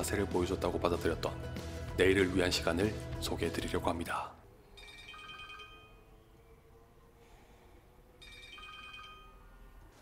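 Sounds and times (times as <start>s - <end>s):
mobile phone ringtone: 4.6s - 6.1s, 8.2s - 9.8s.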